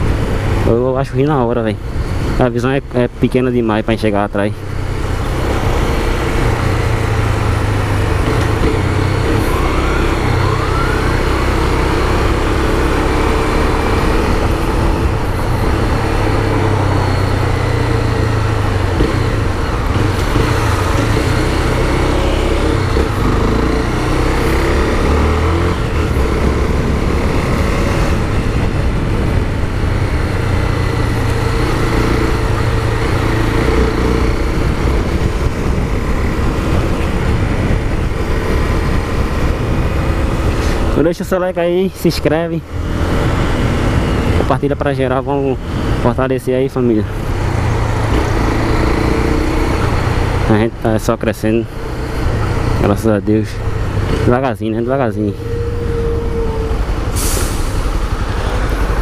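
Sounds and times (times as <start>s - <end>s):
motorcycle engine running: 4.6s - 42.0s
wind rush on microphone: 24.5s - 41.0s, 42.7s - 44.8s.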